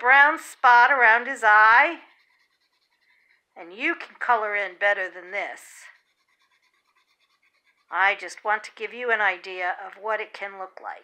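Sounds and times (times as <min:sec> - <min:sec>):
pencil scratching on paper: 0:00.0 - 0:09.8.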